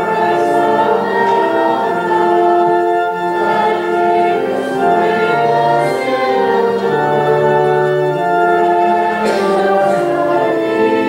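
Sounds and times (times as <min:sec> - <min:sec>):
congregation singing a hymn: 0:00.0 - 0:11.0
organ playing: 0:00.0 - 0:11.0.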